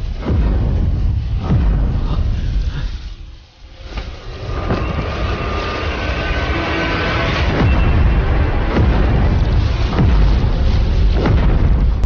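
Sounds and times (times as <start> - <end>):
deep cinematic rumble: 0.0 - 12.0.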